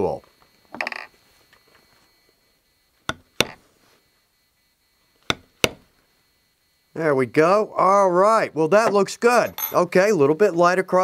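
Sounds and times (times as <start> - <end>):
mallet striking stamping tool: 3.1 - 3.6, 5.2 - 5.9.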